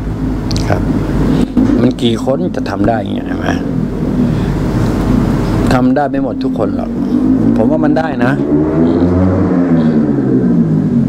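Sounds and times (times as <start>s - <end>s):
motor droning: 0.0s - 11.0s
man speaking: 0.5s - 1.0s, 1.6s - 3.8s, 5.6s - 8.8s.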